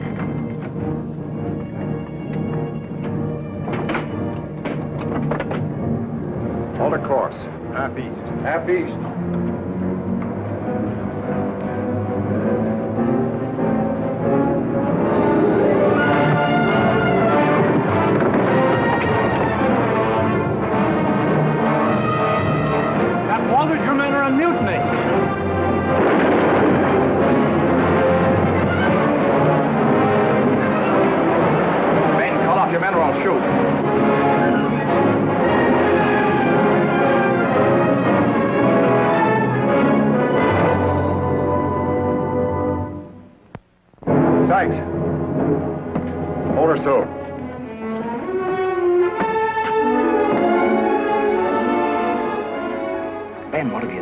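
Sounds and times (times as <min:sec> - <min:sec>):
orchestral music with brass and timpani: 0:00.0 - 0:43.3, 0:44.0 - 0:54.0.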